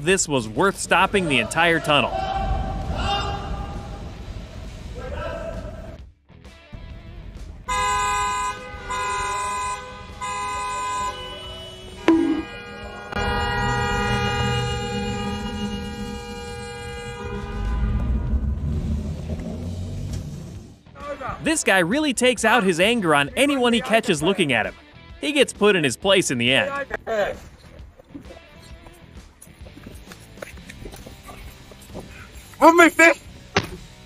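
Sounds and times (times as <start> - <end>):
car horns honking: 7.7 - 18.6
idling traffic rumble: 13.0 - 20.8.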